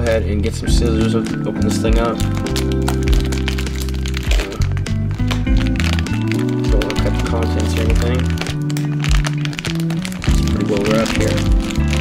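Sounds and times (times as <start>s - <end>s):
music with low chords: 0.0s - 12.0s
plastic bag crinkling: 0.0s - 12.0s.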